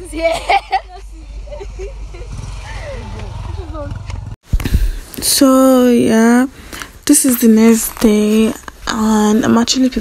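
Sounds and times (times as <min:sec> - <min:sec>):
motorcycle engine passing: 0:01.2 - 0:04.4.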